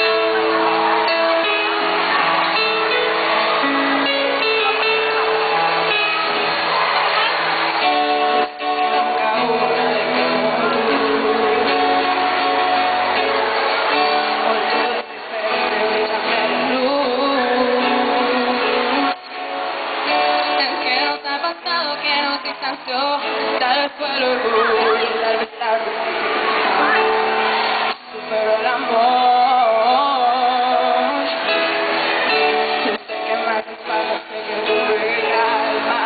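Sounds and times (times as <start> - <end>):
electric guitar: 0.0 - 36.0
keyboard playing: 0.0 - 36.0
girl singing amplified: 7.8 - 12.8, 14.0 - 19.3, 20.1 - 27.1, 28.0 - 36.0.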